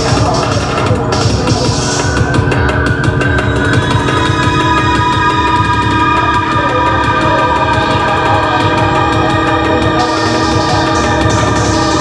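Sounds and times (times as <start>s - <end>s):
pulsing low bass: 0.0s - 12.0s
horn-like synth chord: 3.7s - 12.0s.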